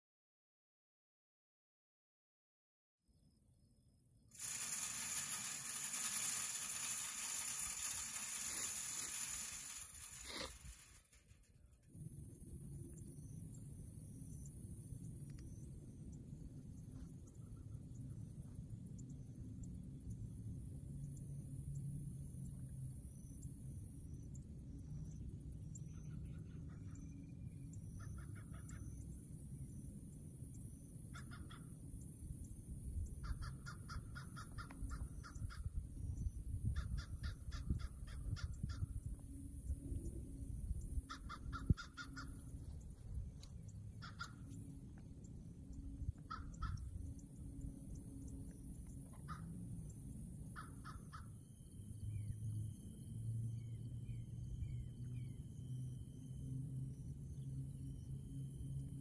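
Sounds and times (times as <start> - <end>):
crows cawing: 44.0 - 44.4.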